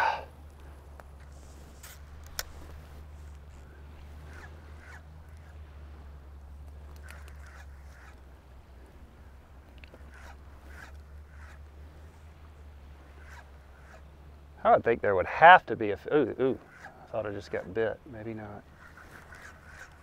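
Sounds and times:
light reel clicks: 0.5s - 5.6s, 6.5s - 8.2s, 18.7s - 20.0s
fishing reel whirring: 1.3s - 8.8s, 9.6s - 14.5s, 16.5s - 20.0s.

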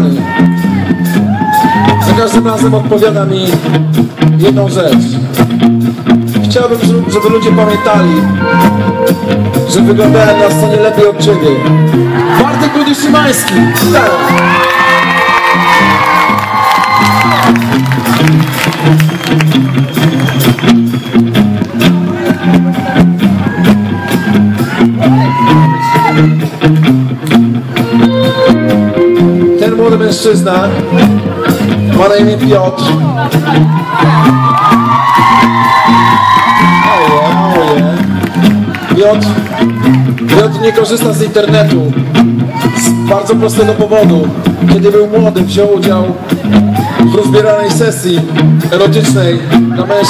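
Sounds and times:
bass line: 0.0s - 50.0s
drums: 0.0s - 50.0s
rock band playing: 0.0s - 50.0s.

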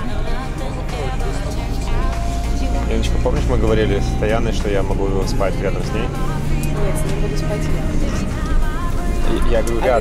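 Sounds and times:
background music: 0.0s - 10.0s
minibus road and engine drone: 0.0s - 10.0s.

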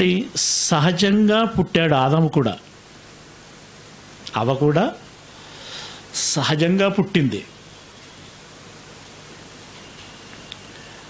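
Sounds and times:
man speaking through microphone: 0.0s - 2.7s, 4.3s - 5.1s, 6.2s - 7.5s
steady hiss: 0.0s - 11.0s.

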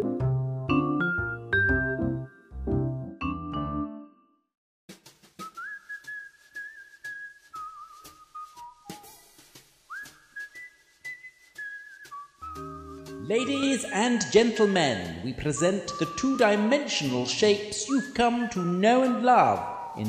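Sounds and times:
whistled tune: 0.8s - 2.5s, 5.4s - 20.0s
light clicking beat: 11.4s - 20.0s
person speaking: 13.2s - 20.0s.

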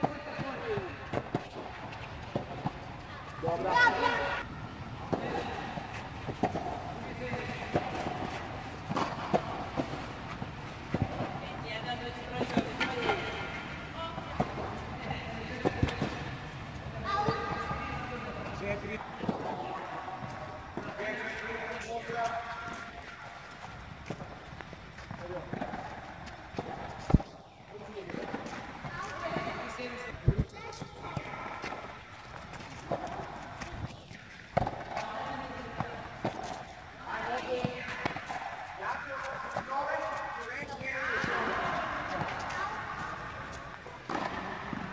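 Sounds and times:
rackets striking tennis balls: 0.0s - 4.1s, 4.8s - 44.9s
tennis balls bouncing on clay: 0.0s - 4.1s, 5.0s - 16.4s, 17.1s - 44.9s
children talking and calling: 17.0s - 18.2s, 30.3s - 31.7s.

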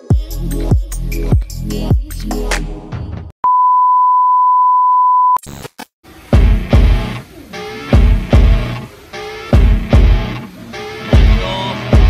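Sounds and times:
steady high beep tone: 3.4s - 5.4s
electronic music with bass hits: 6.3s - 7.2s, 8.0s - 8.8s, 9.6s - 10.4s.

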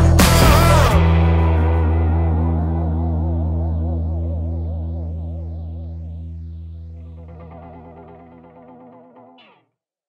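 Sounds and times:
electric guitar chord with chorus: 0.0s - 9.6s
high sweep: 0.2s - 9.6s.

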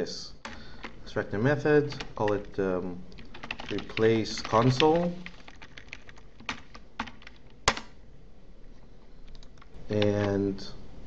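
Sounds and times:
typing on a computer keyboard: 0.4s - 1.0s, 3.2s - 7.9s, 9.2s - 10.4s.

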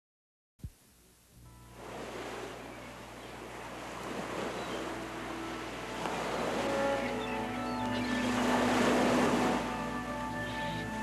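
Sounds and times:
water washing in a wave: 1.8s - 7.2s, 7.9s - 10.0s
soft music with held notes: 2.5s - 11.0s.

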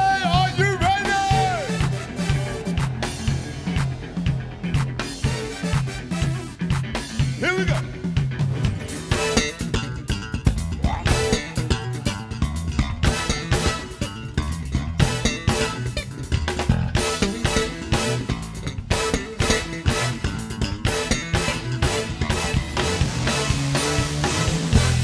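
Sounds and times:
drum kit: 0.0s - 25.0s
electric bass: 0.0s - 25.0s
keyboards: 0.0s - 25.0s.

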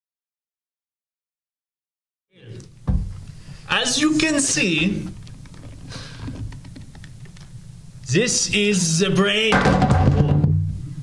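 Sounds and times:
plastic clicks and rattles: 5.1s - 7.5s.

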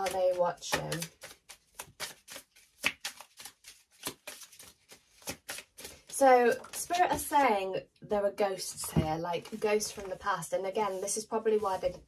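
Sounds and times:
cards being shuffled: 0.0s - 7.4s.

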